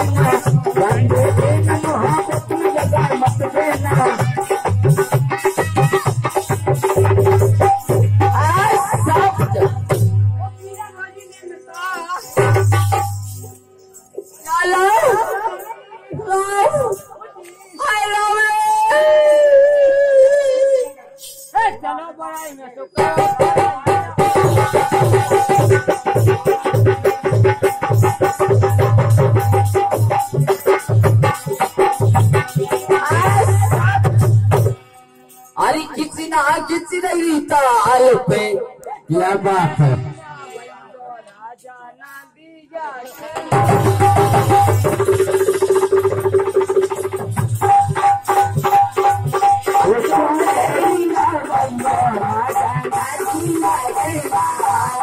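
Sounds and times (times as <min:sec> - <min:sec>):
sharp percussion strokes: 0:00.0 - 0:39.1, 0:43.0 - 0:55.0.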